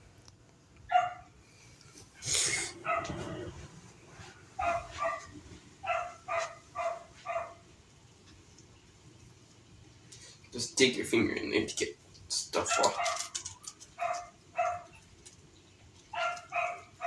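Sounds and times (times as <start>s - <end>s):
small dog yapping: 12.6s - 15.0s, 16.1s - 17.0s.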